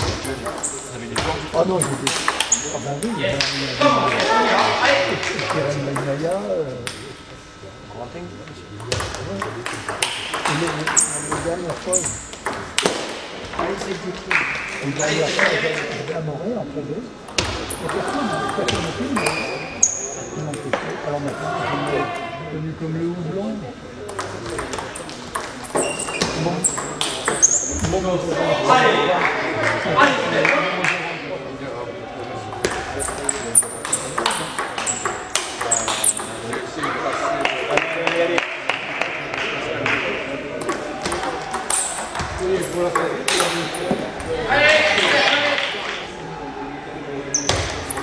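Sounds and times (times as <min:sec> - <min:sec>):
voices in hall: 0:00.0 - 0:48.0
table tennis ball clicking: 0:32.6 - 0:36.7.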